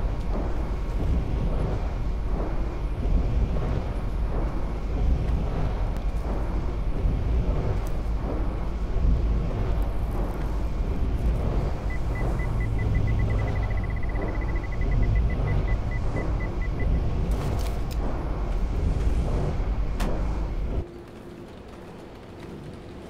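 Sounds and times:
heavy low rumbling drone: 0:00.0 - 0:22.9
short high electronic beeps: 0:11.9 - 0:16.8.

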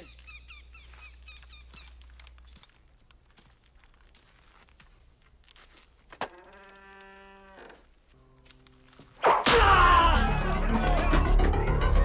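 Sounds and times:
quiet held film score tones: 0:00.0 - 0:09.7.

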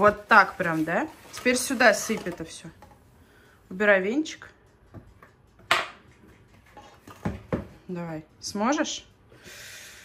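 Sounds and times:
bowls knocking on tiled countertop: 0:04.9 - 0:07.8.

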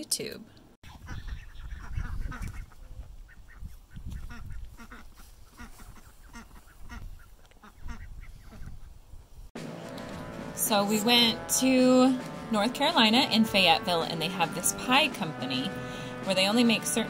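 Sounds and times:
poultry calling: 0:00.9 - 0:08.9.

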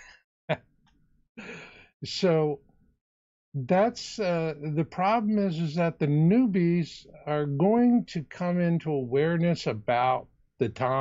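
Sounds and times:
breathy sigh: 0:01.4 - 0:02.0
sharp catch of breath: 0:01.4 - 0:02.0.

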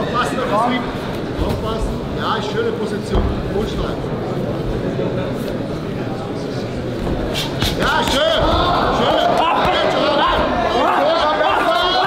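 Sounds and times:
crowd yelling and cheering: 0:07.8 - 0:12.0.

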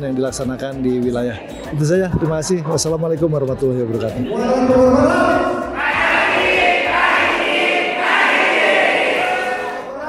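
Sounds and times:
crowd chanting in unison: 0:04.3 - 0:10.0.

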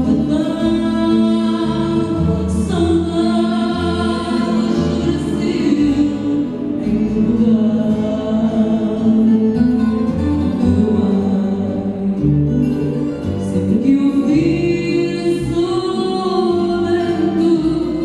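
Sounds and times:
woman and man singing duet: 0:00.0 - 0:09.9, 0:10.5 - 0:18.0
acoustic guitar: 0:00.0 - 0:18.0.

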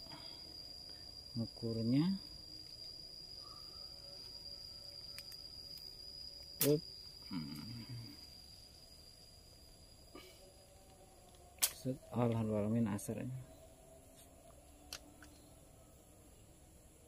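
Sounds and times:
high-pitched insect drone: 0:00.0 - 0:17.0
short vocal sound: 0:07.2 - 0:08.2.

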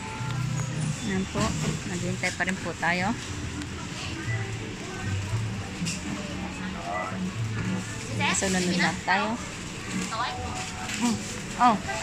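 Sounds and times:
background music: 0:00.0 - 0:12.0
supermarket background noise: 0:00.0 - 0:12.0.

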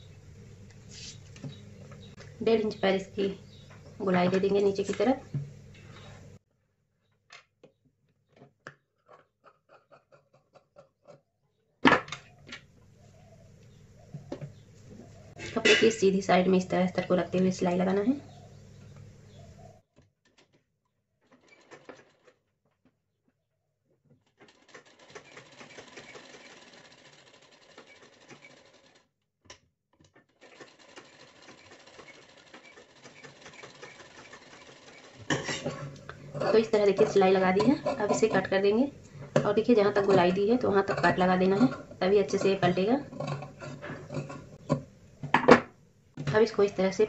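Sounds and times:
sewing machine stitching: 0:21.3 - 0:22.4, 0:24.2 - 0:29.0, 0:30.2 - 0:38.4.

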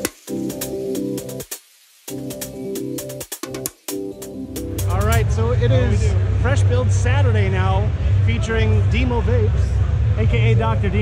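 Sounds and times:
low rumble of busy hall: 0:05.2 - 0:11.0.

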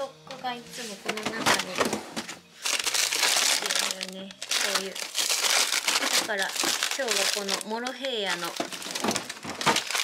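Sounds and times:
plastic bags crinkling: 0:01.0 - 0:10.0.

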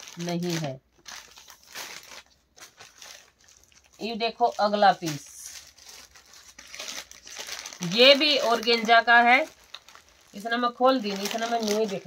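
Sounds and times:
fabric rustling and crinkling: 0:00.0 - 0:12.0.

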